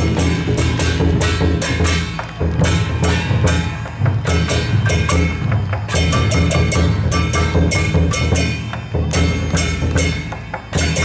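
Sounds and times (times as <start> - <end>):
heavy drum beats: 0.0 - 11.0
ringing cymbal clashes: 0.0 - 11.0.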